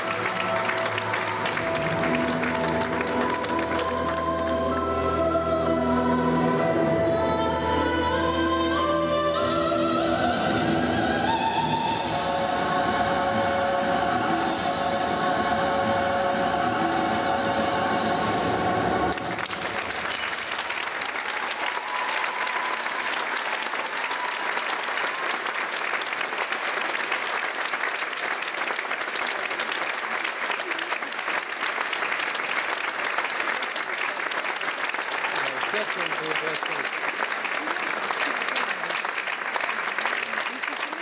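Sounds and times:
audience applauding: 0.0 - 4.8, 19.1 - 41.0
orchestral music with singing: 0.0 - 20.3.

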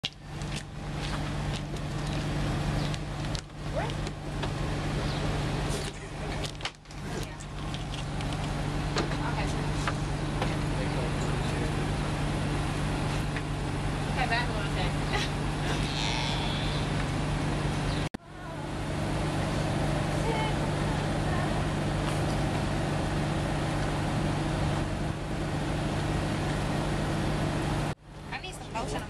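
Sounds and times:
low engine hum: 0.0 - 29.0.

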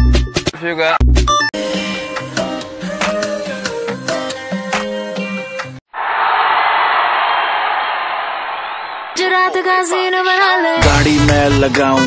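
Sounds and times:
crowd cheering: 5.9 - 10.7.

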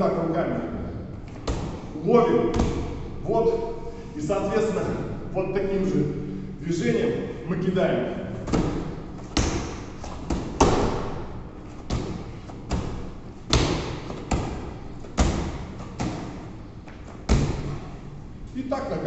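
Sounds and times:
medicine ball thudding into hands: 1.2 - 3.2, 8.3 - 18.0.

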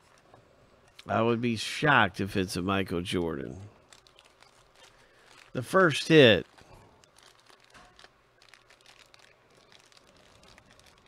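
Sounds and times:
plastic wrapper crinkling: 3.8 - 11.0.

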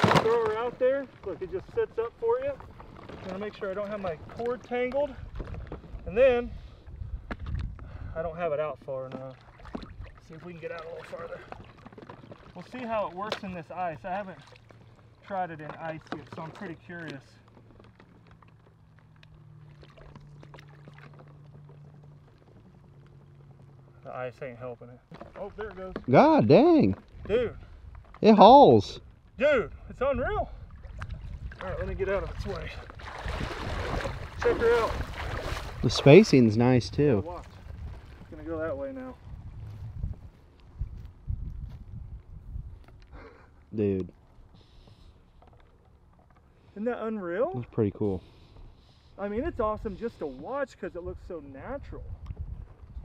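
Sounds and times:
water sloshing: 0.0 - 6.1, 8.9 - 28.6, 30.6 - 39.3
wind buffeting microphone: 5.1 - 8.4, 29.0 - 43.1, 51.0 - 53.0
skim ice clinking and crackling: 11.6 - 13.5
low steady hum: 12.6 - 53.0.

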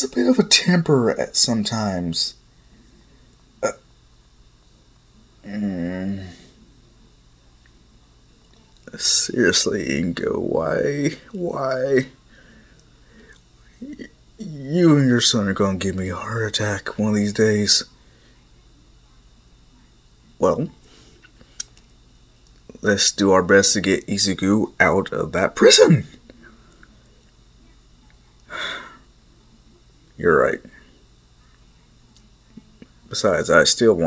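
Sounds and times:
microphone hiss: 0.0 - 34.0
faint breathy sounds: 12.2 - 13.8, 18.0 - 18.6, 28.5 - 29.2
person speaking: 22.7 - 26.1
voice trailing off: 25.5 - 26.1.

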